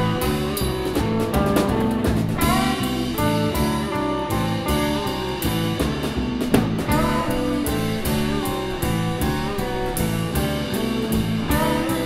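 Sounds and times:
drum kit beat: 0.0s - 12.0s
electric guitars: 0.0s - 12.0s.

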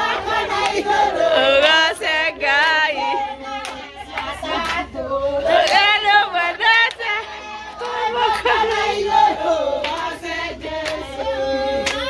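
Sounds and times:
women singing: 0.0s - 12.0s
women clapping hands: 2.5s - 9.0s, 9.8s - 10.2s, 10.8s - 12.0s.

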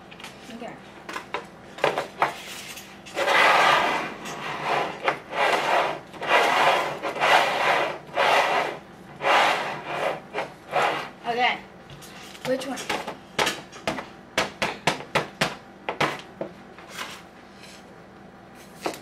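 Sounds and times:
cans scraping across a table: 2.3s - 11.2s.

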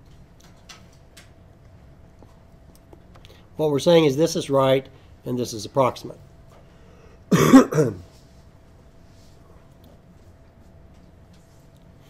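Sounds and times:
man coughing: 7.3s - 8.0s.

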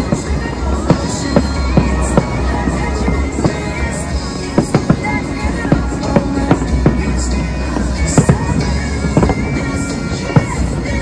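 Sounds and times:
fireworks bangs: 0.0s - 11.0s
music: 0.0s - 11.0s.

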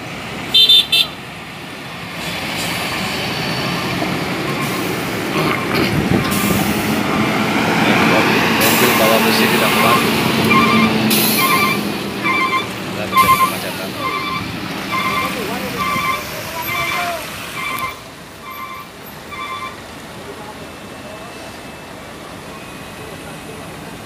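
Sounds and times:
diesel truck engine labouring uphill: 0.0s - 24.0s
vehicle horn toots: 0.5s - 1.2s, 9.3s - 19.8s
short evenly spaced beeps: 9.7s - 17.0s, 17.6s - 19.8s.

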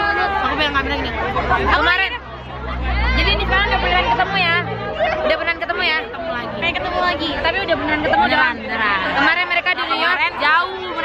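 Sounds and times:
crowd babble: 0.0s - 11.0s
young women chattering excitedly: 0.0s - 11.0s.

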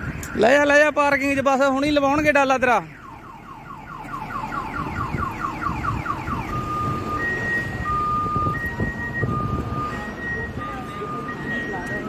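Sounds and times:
vehicle engine rumbling: 0.0s - 12.0s
electronic warning sounder: 2.9s - 12.0s.

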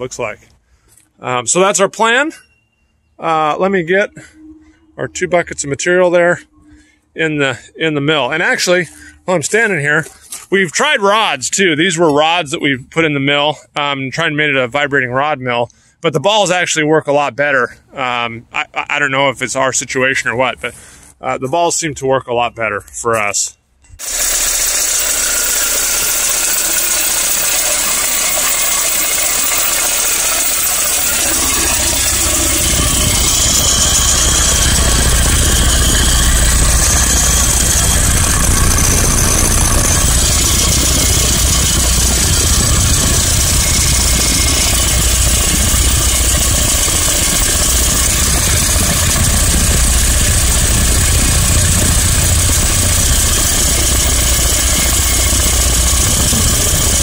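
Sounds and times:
steel balls rattling in drum: 24.0s - 57.0s
vibrator motor hum: 24.0s - 57.0s.

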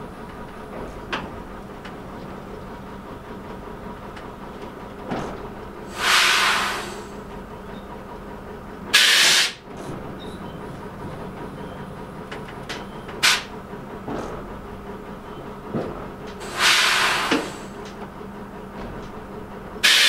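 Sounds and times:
train engine drone: 0.0s - 20.0s
compressed air hissing: 5.9s - 7.1s, 9.0s - 9.6s, 16.4s - 17.8s.

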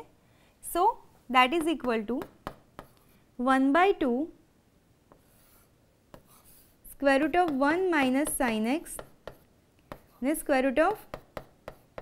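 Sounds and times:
stylus tap: 1.6s - 3.0s.

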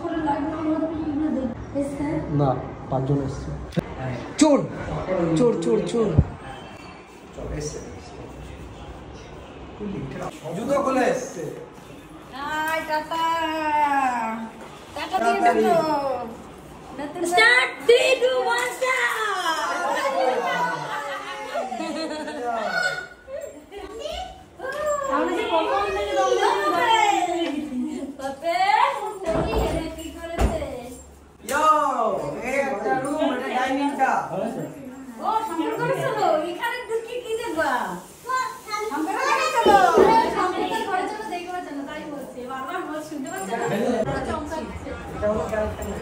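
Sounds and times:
people chattering: 0.0s - 46.0s
overlapping excited talk: 17.1s - 27.8s.

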